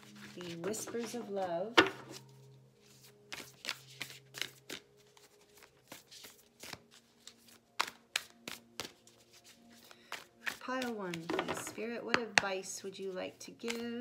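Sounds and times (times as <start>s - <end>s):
cards being shuffled: 2.0s - 11.7s, 13.6s - 14.0s.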